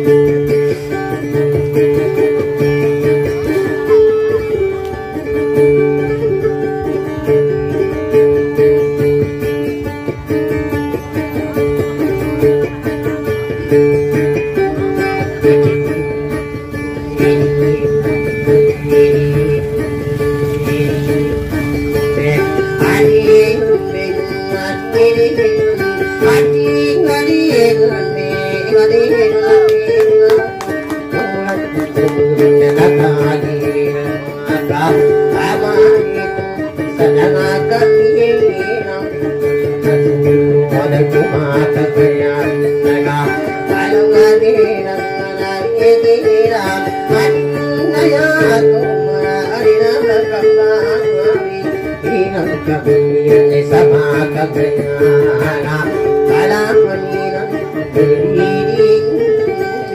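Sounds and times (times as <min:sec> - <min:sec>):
acoustic guitar plucking: 0:00.0 - 0:59.9.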